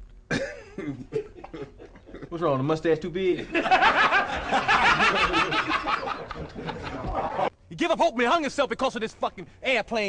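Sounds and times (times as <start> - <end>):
person laughing in bursts: 0.9 - 2.4, 3.4 - 7.5.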